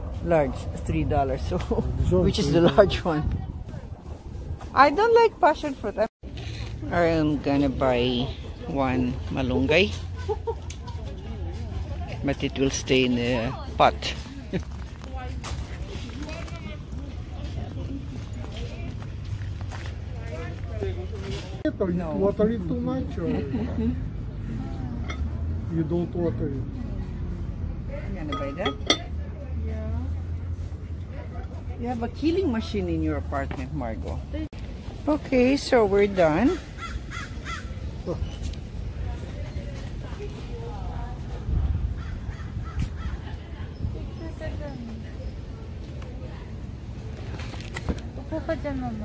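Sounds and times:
faint distant voices: 0:34.1 - 0:49.0
birds cawing: 0:36.6 - 0:37.9.

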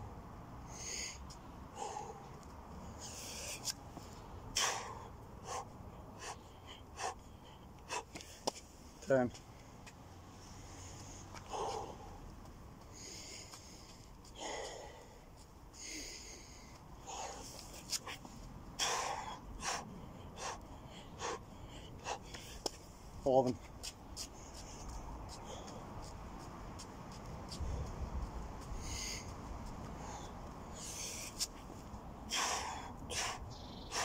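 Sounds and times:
man breathing hard: 0:00.6 - 0:08.5, 0:10.5 - 0:23.2, 0:24.3 - 0:26.1, 0:27.5 - 0:34.0.

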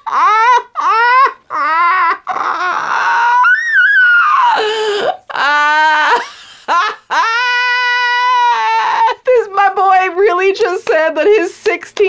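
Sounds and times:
person squealing laugh: 0:00.0 - 0:09.2.

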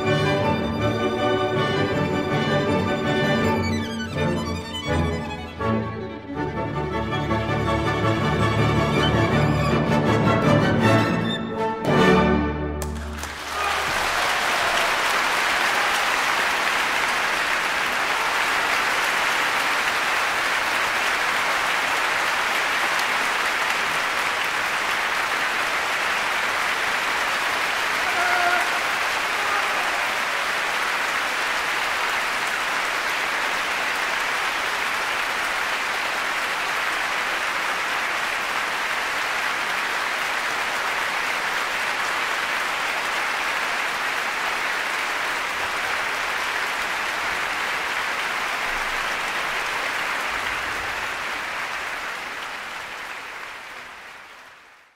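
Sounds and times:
audience applauding: 0:12.8 - 0:54.9.

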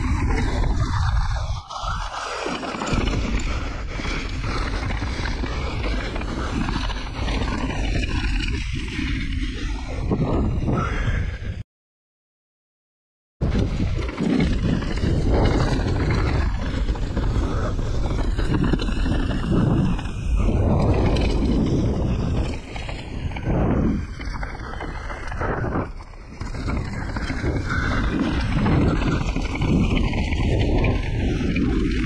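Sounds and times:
bike tyres rushing on dirt: 0:00.0 - 0:11.1, 0:13.5 - 0:32.0
wind on microphone: 0:00.0 - 0:11.6, 0:13.4 - 0:32.0.

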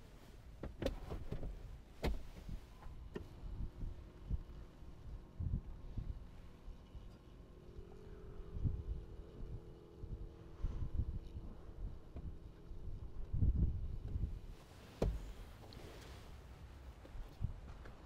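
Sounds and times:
wind buffeting microphone: 0:03.4 - 0:06.4, 0:08.3 - 0:15.6.

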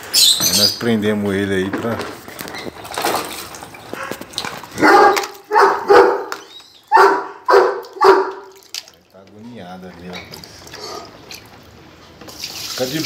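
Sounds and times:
dog barking: 0:04.8 - 0:08.5.

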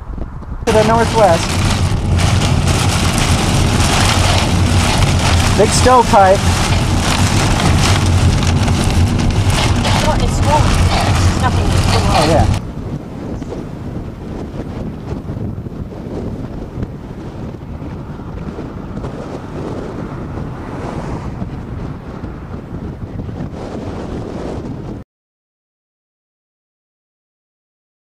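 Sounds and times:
gusty wind on microphone: 0:00.0 - 0:25.0.

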